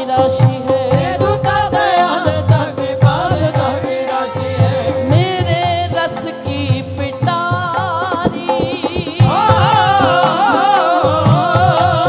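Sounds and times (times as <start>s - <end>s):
hand drum beat: 0.0s - 12.0s
woman singing: 0.0s - 12.0s.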